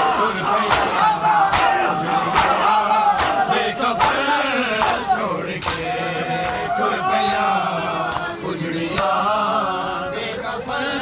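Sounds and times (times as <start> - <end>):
men chanting a lament: 0.0 - 11.0
sharp slaps on chests: 0.6 - 6.7.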